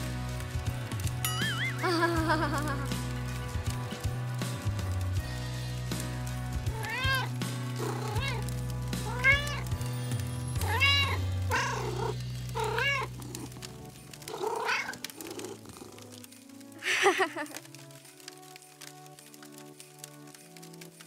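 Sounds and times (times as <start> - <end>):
background music with low notes: 0.0 - 21.0
cat meowing: 6.7 - 8.5, 9.1 - 9.7, 10.6 - 13.2, 14.3 - 15.1.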